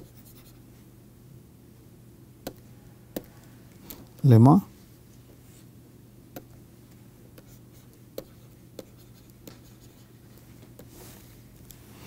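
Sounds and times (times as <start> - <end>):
faint low hum: 0.0 - 12.0
stylus tapping on tablet: 2.4 - 2.6, 3.2 - 3.4, 7.4 - 9.8.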